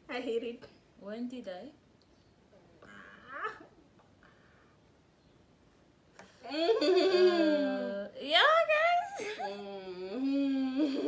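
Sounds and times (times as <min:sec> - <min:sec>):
woman whimpering: 0:08.9 - 0:11.0.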